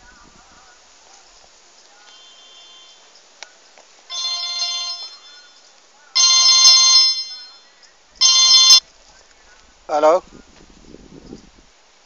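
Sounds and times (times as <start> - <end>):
mobile phone ringtone: 4.1 - 5.6, 6.2 - 8.8.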